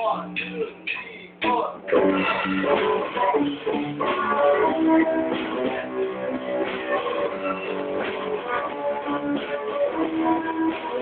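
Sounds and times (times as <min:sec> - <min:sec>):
band with strummed guitars: 0:00.0 - 0:11.0.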